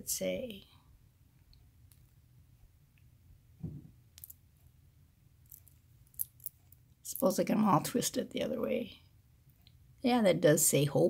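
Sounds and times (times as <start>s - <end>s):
soft low thud: 3.6s - 4.0s
charms and beads clicking: 4.2s - 4.4s, 5.4s - 7.2s.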